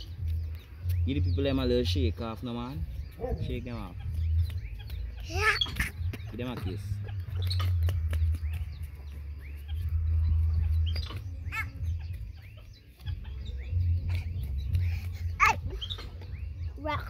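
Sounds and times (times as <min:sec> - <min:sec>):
low rumble on microphone: 0:00.0 - 0:17.0
chickens clucking: 0:02.9 - 0:16.7.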